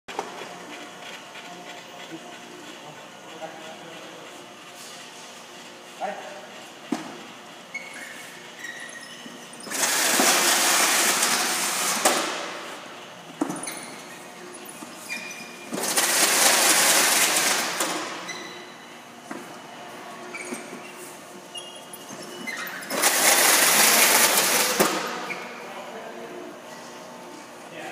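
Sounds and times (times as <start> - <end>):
packing tape unwinding: 22.9 - 25.1.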